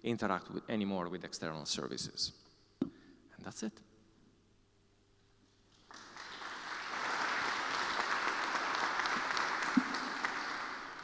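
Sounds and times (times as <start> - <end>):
audience applauding: 5.7 - 11.0.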